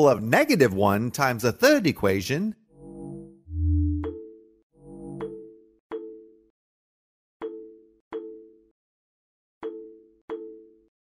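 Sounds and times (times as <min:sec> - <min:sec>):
synthesized plinking notes: 0:02.8 - 0:06.5.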